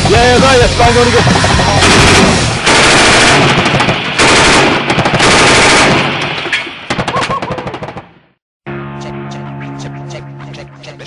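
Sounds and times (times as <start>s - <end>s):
music: 0.0s - 2.6s, 8.6s - 11.0s
automatic gunfire: 1.8s - 8.0s.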